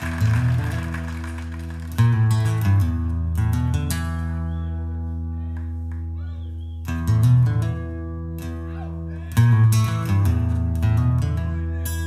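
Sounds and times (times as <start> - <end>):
music over loudspeakers with bass: 0.0 - 6.2, 6.8 - 12.0.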